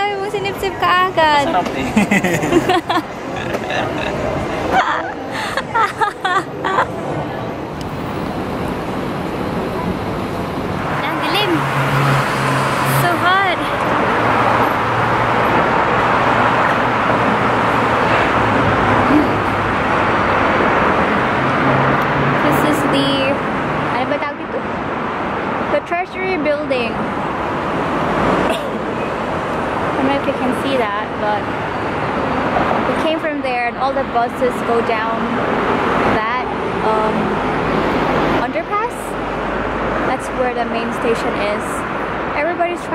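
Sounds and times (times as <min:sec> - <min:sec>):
cars passing: 0:00.0 - 0:42.9.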